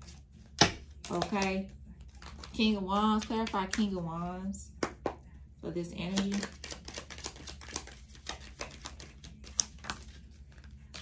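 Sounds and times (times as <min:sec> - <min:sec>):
cards shuffled by hand: 0:00.0 - 0:03.9, 0:06.0 - 0:11.0.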